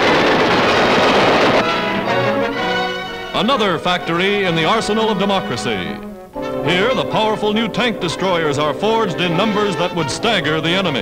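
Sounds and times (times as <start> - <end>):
machine guns firing: 0.0 - 2.5
brass-led orchestral music: 0.8 - 11.0.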